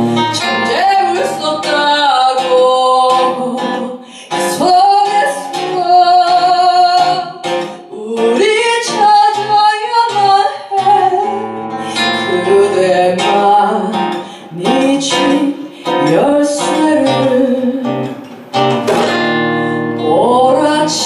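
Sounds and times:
fingerpicked acoustic guitar: 0.0s - 21.0s
woman singing: 0.2s - 18.2s, 19.7s - 21.0s.

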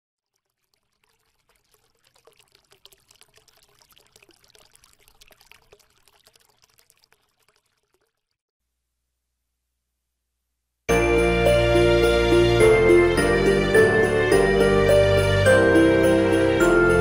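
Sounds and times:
water pouring: 0.2s - 8.4s.

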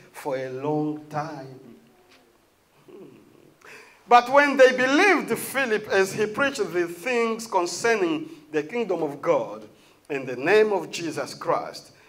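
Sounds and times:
man speaking: 0.0s - 1.9s, 4.1s - 11.9s
man humming: 2.8s - 3.7s.

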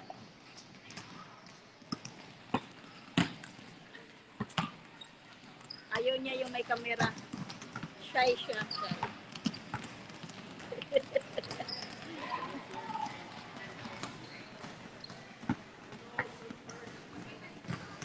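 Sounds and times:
basketballs bouncing on hard court: 1.8s - 18.0s
voices chattering: 8.0s - 9.3s, 10.5s - 18.0s.

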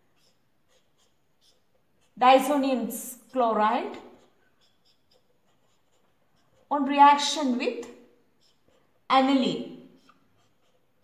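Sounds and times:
marker strokes on paper: 0.0s - 11.0s.

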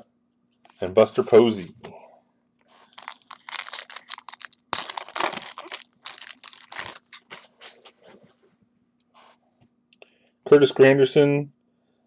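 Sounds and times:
foil wrapper crinkling and tearing: 2.8s - 7.4s.

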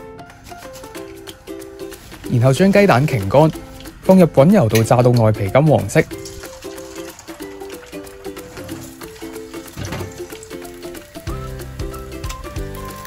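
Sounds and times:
quirky upbeat music: 0.0s - 13.0s
eggs frying in oil: 0.5s - 13.0s.

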